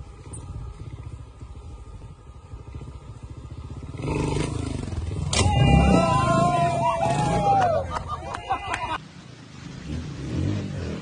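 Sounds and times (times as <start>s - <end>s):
people shouting: 4.5s - 9.0s
motorcycle landing thud: 5.1s - 5.7s.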